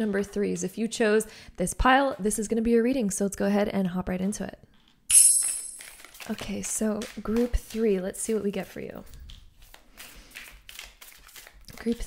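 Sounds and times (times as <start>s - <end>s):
cards being shuffled: 5.4s - 12.0s.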